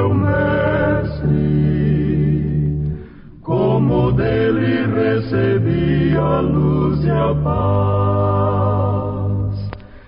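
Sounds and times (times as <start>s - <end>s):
hymn singing: 0.0s - 10.0s.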